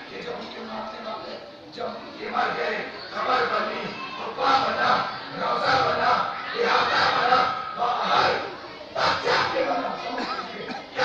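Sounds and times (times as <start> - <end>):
crowd calling out: 2.3 - 11.0.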